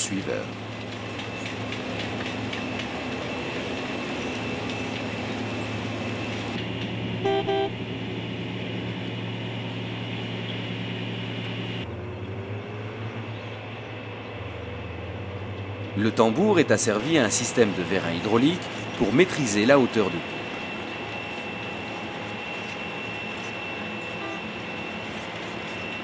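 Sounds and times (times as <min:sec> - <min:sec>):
heavy diesel machinery running: 0:00.0 - 0:26.0
short horn toot: 0:07.2 - 0:07.8.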